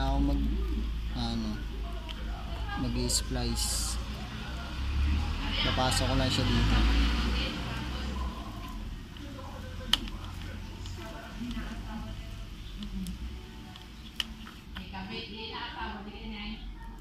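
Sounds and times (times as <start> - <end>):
faint background voices: 0.0 - 17.0.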